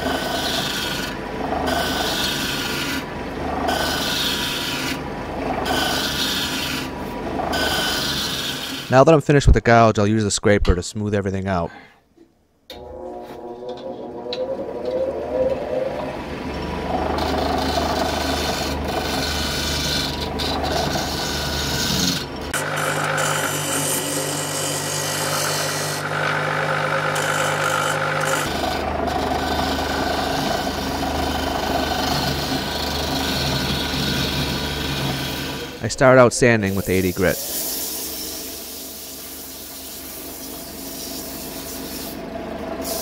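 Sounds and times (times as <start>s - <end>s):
scraper rasping on spinning wood: 0.0s - 8.9s, 16.8s - 35.8s
wood lathe motor hum: 0.0s - 8.9s, 12.7s - 35.9s, 36.5s - 43.0s.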